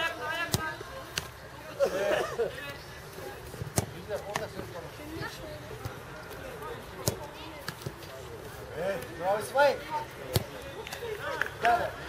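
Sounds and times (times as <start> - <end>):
football being kicked: 0.4 - 1.3, 3.5 - 4.6, 6.9 - 8.0, 10.3 - 10.6.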